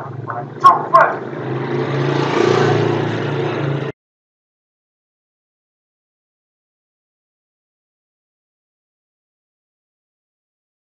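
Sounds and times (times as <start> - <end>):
background commotion roar: 0.0 - 3.9.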